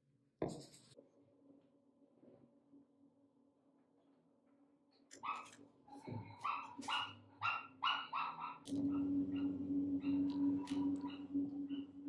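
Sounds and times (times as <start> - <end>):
dog yapping: 6.4 - 8.7
steady low hum: 8.7 - 12.0.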